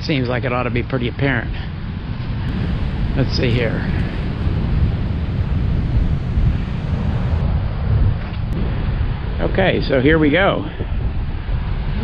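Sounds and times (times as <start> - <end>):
wind buffeting microphone: 1.9 - 12.0
heavy ocean surf: 2.5 - 8.1.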